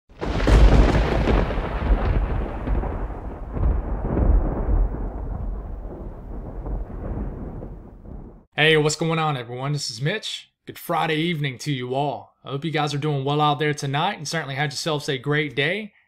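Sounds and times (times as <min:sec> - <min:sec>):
thunder rolling: 0:00.1 - 0:08.5.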